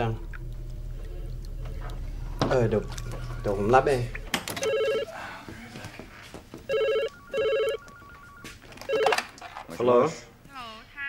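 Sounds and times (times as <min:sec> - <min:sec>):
telephone ringing electronic trill: 0:02.7 - 0:05.1, 0:06.7 - 0:09.3.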